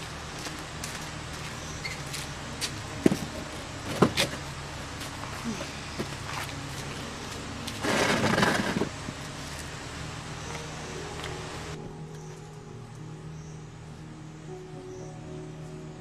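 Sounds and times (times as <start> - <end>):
steady low hum: 0.0 - 16.0
wooden chair scraping on paving: 3.0 - 4.4, 7.7 - 9.2.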